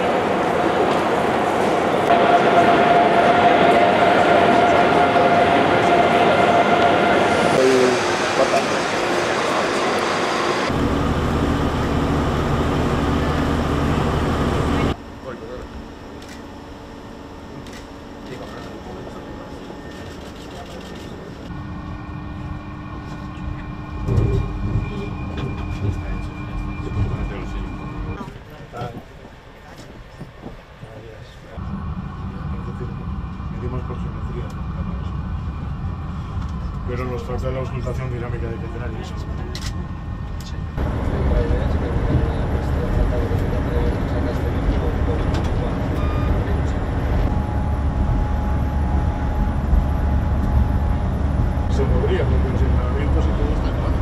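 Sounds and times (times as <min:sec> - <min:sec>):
train rushing with whine: 0:00.0 - 0:54.0
heavy low hum: 0:01.4 - 0:19.8, 0:31.5 - 0:54.0.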